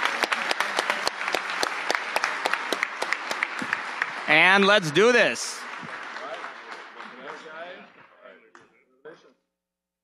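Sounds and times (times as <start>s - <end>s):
audience applause: 0.0s - 8.4s
overlapping indistinct voices: 0.0s - 8.8s.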